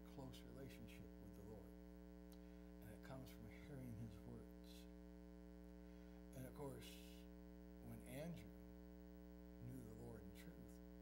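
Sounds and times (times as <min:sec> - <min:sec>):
man speaking quietly: 0:00.0 - 0:01.8, 0:02.8 - 0:05.0, 0:06.3 - 0:08.6, 0:09.6 - 0:10.9
electrical mains hum: 0:00.0 - 0:11.0.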